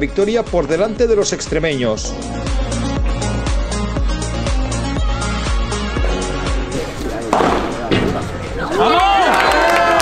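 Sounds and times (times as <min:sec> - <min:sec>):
background music with steady beat: 0:00.0 - 0:09.3
excited shouting voices: 0:08.6 - 0:10.0.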